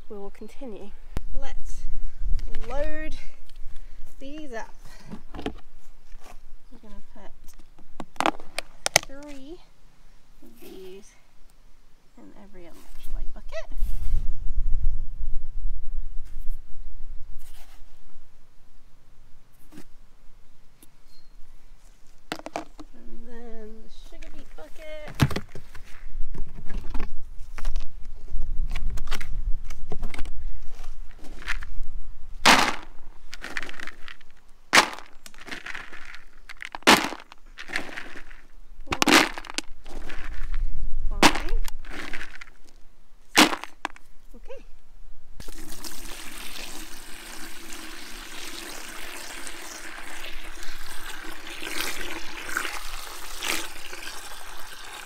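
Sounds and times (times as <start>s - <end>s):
plastic buckets knocking and clicking: 22.3s - 22.9s, 34.8s - 40.4s
feed pellets dropped into bucket: 32.5s - 40.6s, 41.2s - 42.6s, 43.4s - 44.0s
hose filling plastic bucket: 45.4s - 55.0s.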